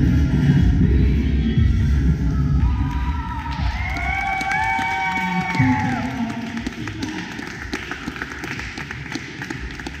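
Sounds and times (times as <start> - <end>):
scattered applause: 2.8 - 10.0.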